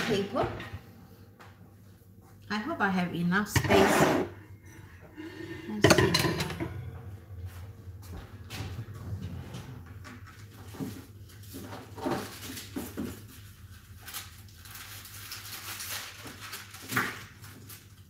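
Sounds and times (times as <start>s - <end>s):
low steady hum: 0.0s - 15.4s
metal rack clattering on counter: 5.8s - 6.7s.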